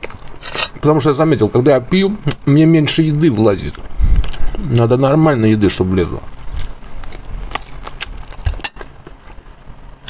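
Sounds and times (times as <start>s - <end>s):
chewing and mouth smacks: 6.5s - 9.4s.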